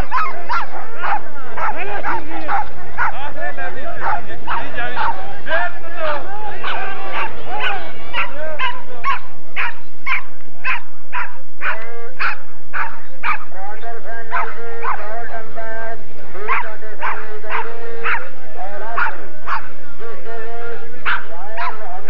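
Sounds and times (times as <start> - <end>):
dogs whining: 0.0 - 3.2
dogs yelping: 0.0 - 5.2, 6.0 - 13.5, 14.3 - 15.1, 16.4 - 18.3, 18.9 - 19.7, 21.0 - 21.9.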